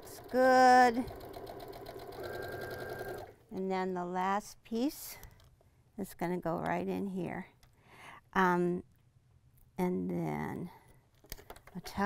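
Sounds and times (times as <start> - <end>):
sewing machine stitching: 0.0 - 3.4.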